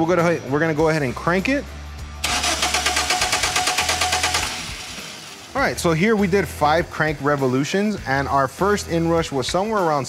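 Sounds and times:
car engine cranking without starting: 2.2s - 5.5s.

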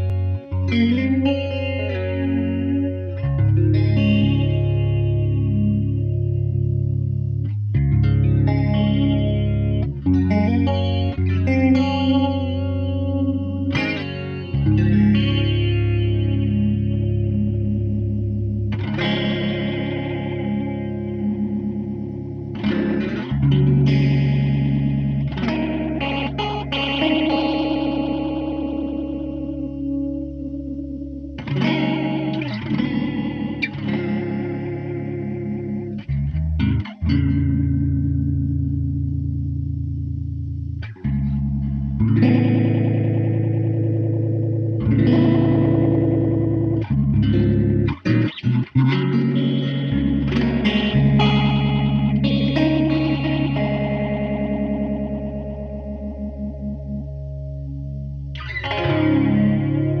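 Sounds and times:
electric guitar with flanger: 0.0s - 60.0s.

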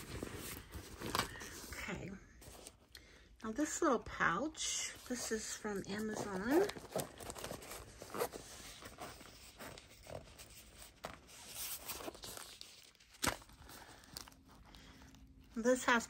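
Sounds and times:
fabric pouch rustling: 0.0s - 1.8s, 4.9s - 15.6s
zipper unzipping: 6.0s - 8.5s.

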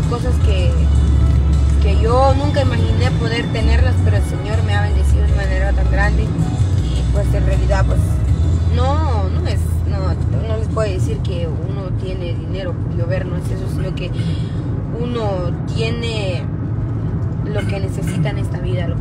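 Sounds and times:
low rumble: 0.0s - 19.0s.

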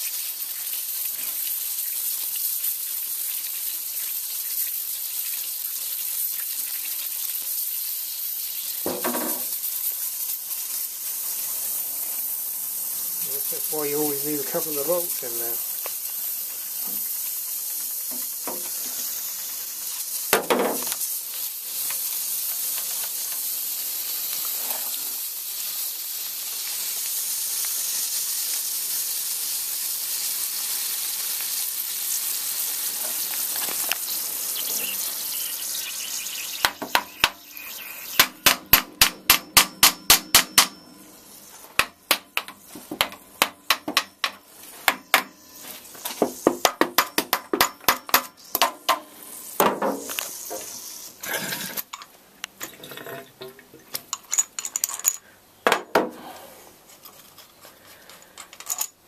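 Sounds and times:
steady hiss from compressor: 0.0s - 43.6s, 48.3s - 51.3s.

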